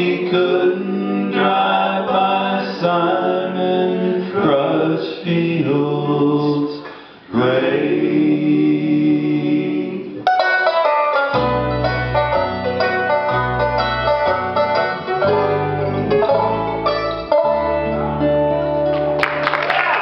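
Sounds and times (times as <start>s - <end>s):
mandolin: 0.0s - 4.1s, 10.1s - 19.6s
acoustic guitar: 0.0s - 19.6s
bass: 7.4s - 20.0s
banjo rolls: 10.2s - 19.6s.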